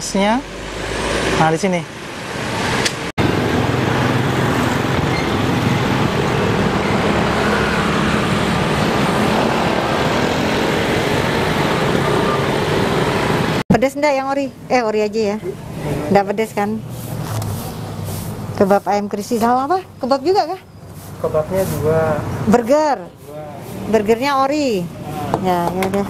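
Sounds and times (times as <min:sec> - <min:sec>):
scooter and car engines passing: 0:00.0 - 0:13.6, 0:15.2 - 0:18.9, 0:20.2 - 0:26.0
street traffic noise: 0:00.0 - 0:26.0.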